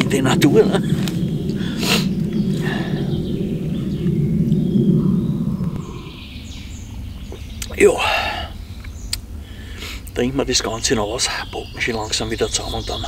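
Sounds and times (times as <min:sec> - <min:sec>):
low rumble: 0:00.0 - 0:11.1
faint bird calls: 0:00.0 - 0:13.0.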